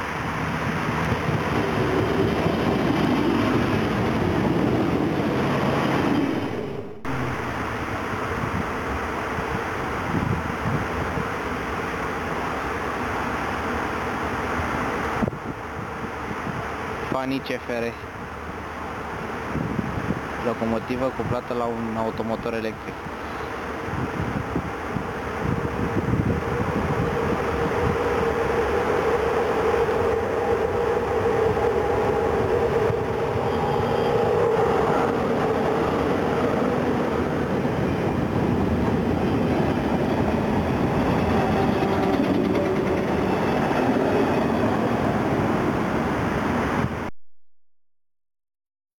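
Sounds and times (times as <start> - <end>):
train wheels rolling on rail: 0.0 - 16.9, 22.1 - 47.0.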